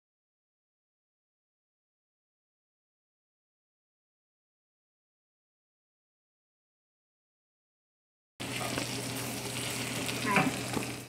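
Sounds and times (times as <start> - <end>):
ravioli sizzling in butter: 8.4 - 11.0.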